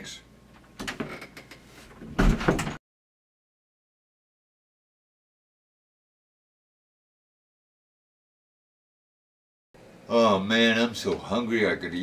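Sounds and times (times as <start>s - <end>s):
door shutting knock: 2.1s - 2.8s.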